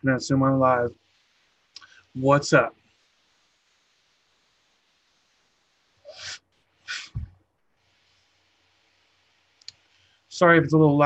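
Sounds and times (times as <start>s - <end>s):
person breathing out: 6.1s - 7.2s
faint click: 9.6s - 9.8s.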